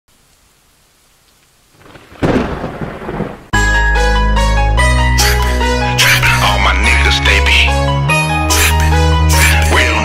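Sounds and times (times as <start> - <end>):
faint rain hiss: 0.1 - 3.5
thunderclap rumbling: 1.7 - 3.6.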